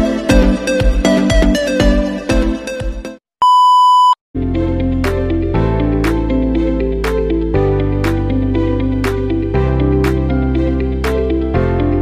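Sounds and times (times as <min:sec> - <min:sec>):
electronic music with beat: 0:00.0 - 0:03.2
high test-pattern beep: 0:03.4 - 0:04.2.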